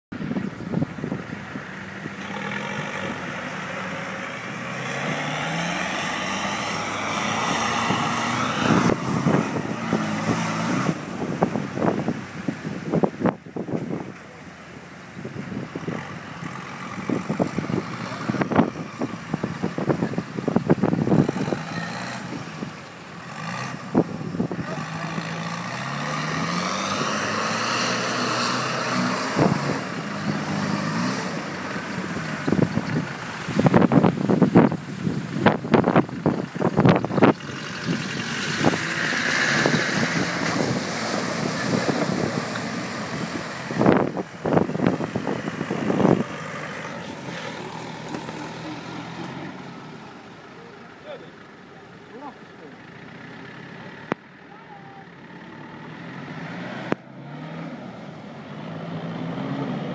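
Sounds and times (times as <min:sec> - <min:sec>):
truck engine revving hard: 0:01.0 - 0:14.1, 0:15.1 - 0:54.2, 0:55.1 - 0:59.9.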